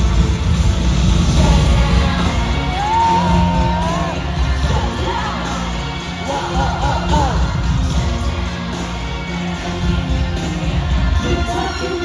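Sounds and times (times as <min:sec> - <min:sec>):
loud concert music with bass beat: 0:00.0 - 0:12.0.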